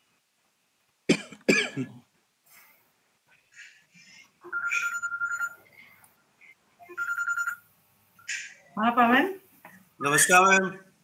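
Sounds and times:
warbling telephone ringtone: 0:04.4 - 0:05.7, 0:06.8 - 0:07.6.

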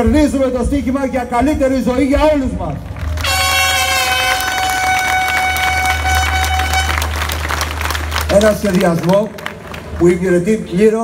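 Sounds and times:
audience applauding: 0:02.8 - 0:11.0
horn blast: 0:03.2 - 0:08.3.

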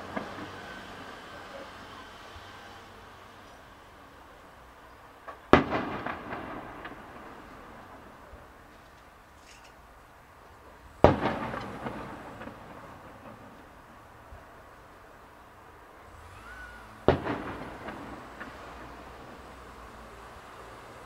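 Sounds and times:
rumbling echo with crackles: 0:05.2 - 0:09.2, 0:10.9 - 0:14.5, 0:17.0 - 0:19.5
distant firework shells bursting: 0:05.2 - 0:09.9, 0:10.9 - 0:14.2, 0:16.9 - 0:20.0.

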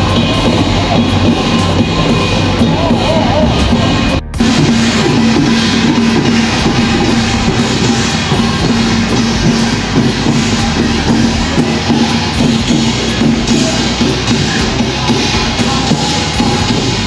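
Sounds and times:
low held note: 0:00.0 - 0:15.3
drums: 0:00.0 - 0:17.0.

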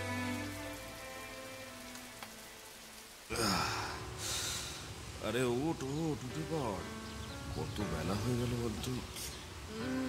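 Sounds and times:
rain pattering on a window: 0:00.0 - 0:06.9
slow sad string melody: 0:00.0 - 0:10.0.

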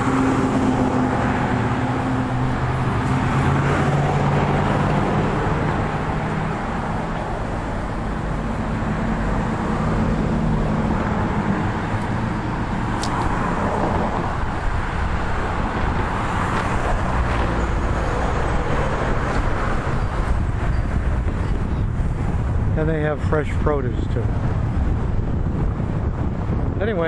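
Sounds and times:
highway traffic rushing past: 0:00.0 - 0:27.0.

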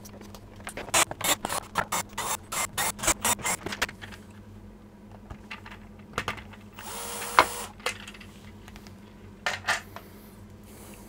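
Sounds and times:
cordless drill running: 0:01.0 - 0:03.6, 0:06.8 - 0:07.8
plastic clicks and clatter: 0:02.8 - 0:04.4, 0:07.8 - 0:09.8.

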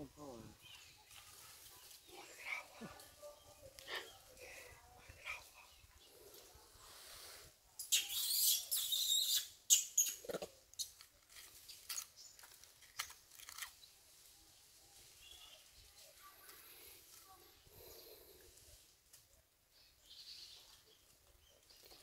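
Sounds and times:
crackling rustle of leaves: 0:00.0 - 0:07.6, 0:10.7 - 0:22.0.

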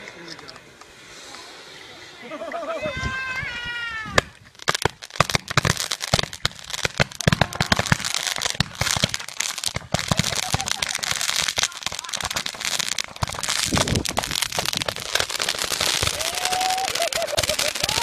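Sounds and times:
crackling hiss of burning sparks: 0:00.0 - 0:18.0
fireworks popping and banging: 0:04.0 - 0:18.0.

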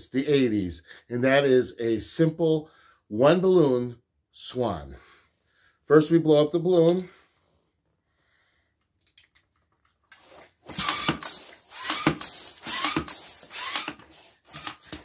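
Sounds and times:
hand pump air strokes: 0:10.1 - 0:15.0
latex balloon squeaks: 0:10.2 - 0:14.0.

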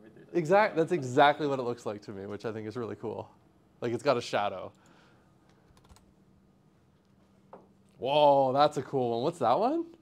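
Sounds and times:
computer keyboard clicks: 0:05.7 - 0:06.1.

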